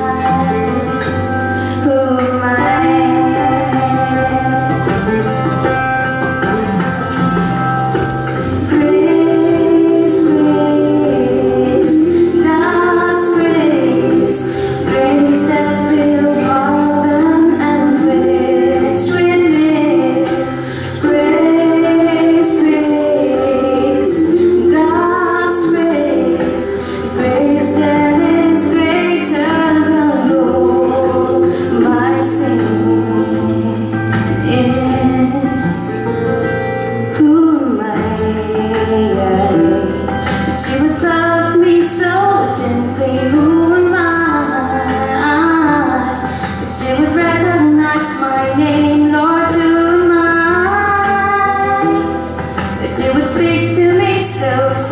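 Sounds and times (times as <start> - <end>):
woman singing worship song: 0.0 - 5.5, 8.5 - 36.0, 37.1 - 54.9
instrumental accompaniment chords: 0.0 - 54.9.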